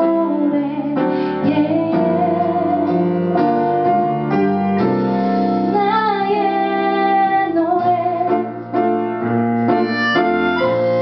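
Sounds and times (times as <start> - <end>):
woman singing: 0.0 - 3.7, 5.6 - 8.6
band with piano bass drums: 0.0 - 11.0.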